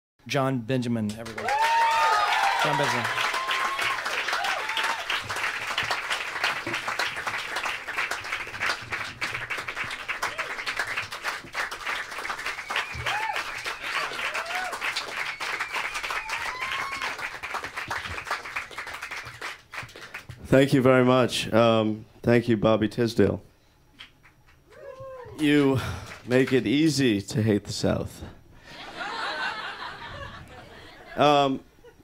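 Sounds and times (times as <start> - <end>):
audience applauding: 1.1 - 20.4, 25.4 - 26.9.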